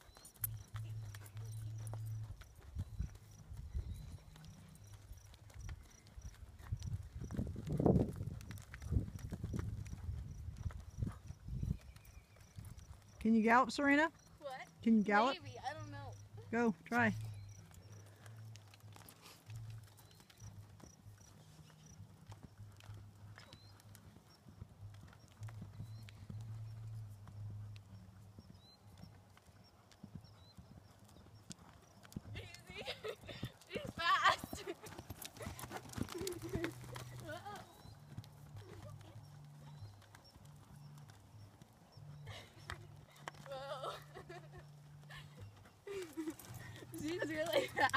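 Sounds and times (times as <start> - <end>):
horse hoofbeats on soft dirt: 0.0 - 47.9.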